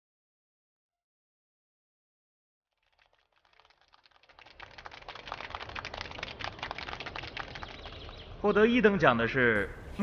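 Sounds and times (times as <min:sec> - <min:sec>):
audience applause: 0:02.8 - 0:08.3.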